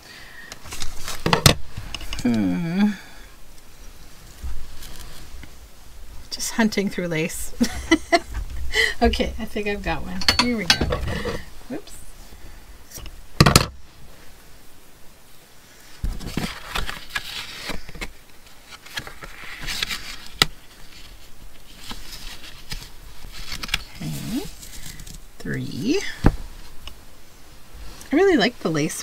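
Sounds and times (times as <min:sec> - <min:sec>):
soft rustling and scraping: 0:00.6 - 0:02.2, 0:03.5 - 0:12.4, 0:15.6 - 0:29.0.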